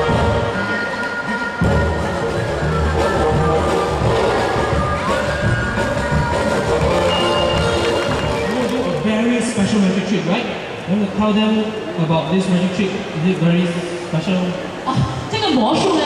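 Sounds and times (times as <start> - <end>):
background music: 0.0 - 10.6.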